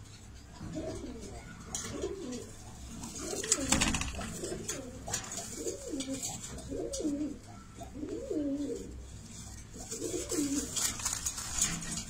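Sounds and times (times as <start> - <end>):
pigeons rustling on metal grate: 0.0 - 12.0
pigeon cooing: 0.6 - 11.0.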